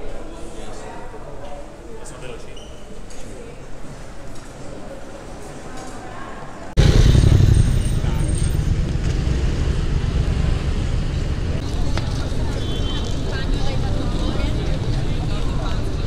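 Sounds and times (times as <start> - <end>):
people talking: 4.7 - 8.7, 11.4 - 16.0
cars passing with low rumble: 6.8 - 16.0.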